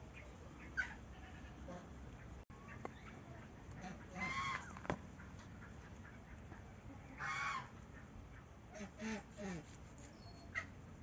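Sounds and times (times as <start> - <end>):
farm animals calling: 0.0 - 10.8.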